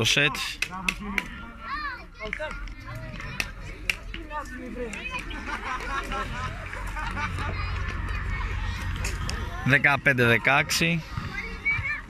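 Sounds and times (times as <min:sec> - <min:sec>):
spectators chattering: 0:00.0 - 0:12.0
children's voices: 0:01.4 - 0:12.0
steady low rumble: 0:05.5 - 0:11.8.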